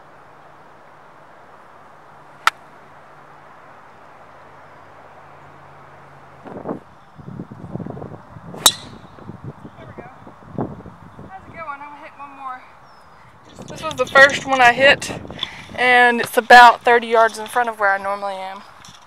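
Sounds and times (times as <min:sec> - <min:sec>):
gusty rustling noise: 0:06.4 - 0:19.0
golf club striking ball: 0:08.6 - 0:09.1.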